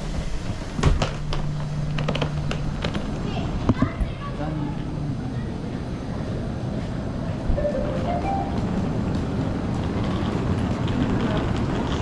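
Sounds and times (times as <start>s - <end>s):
train ventilation hum: 0.0s - 12.0s
footsteps: 7.6s - 11.0s.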